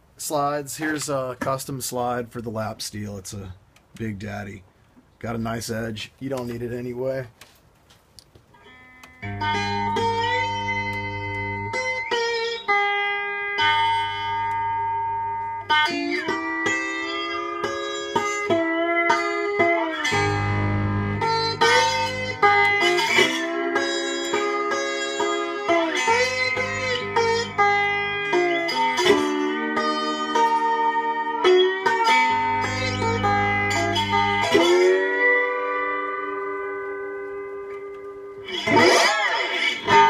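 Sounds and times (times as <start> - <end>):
slide guitar playing: 8.6 - 40.0
strummed guitar flourish: 8.7 - 40.0
deep bass notes: 20.1 - 22.8, 26.2 - 28.4, 32.4 - 34.7.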